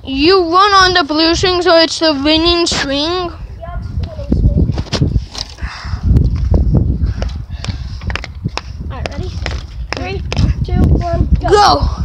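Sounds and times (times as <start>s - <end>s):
wind noise on microphone: 0.0s - 12.0s
child's voice: 0.1s - 4.8s, 8.9s - 9.4s, 10.0s - 12.0s
microphone handling rumble: 2.2s - 12.0s.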